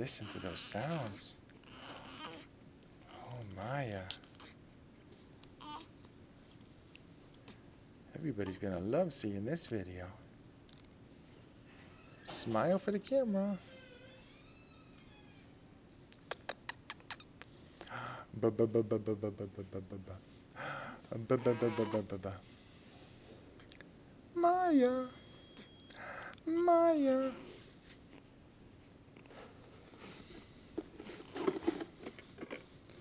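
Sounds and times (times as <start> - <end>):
baby mouth smacks and grunts: 15.9 - 17.9
faint mouth clicks: 15.9 - 17.9
newborn baby squeak: 21.4 - 22.0.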